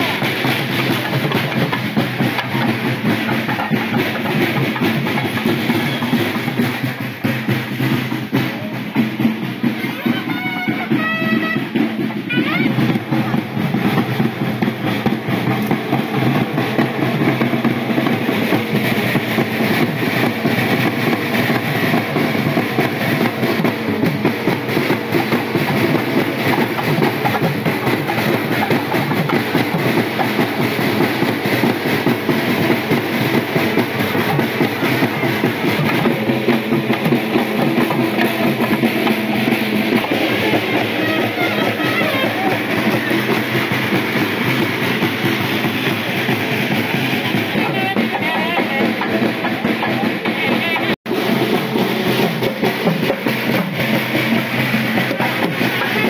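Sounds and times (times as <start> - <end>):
band playing with loud drums: 0.0 - 56.0.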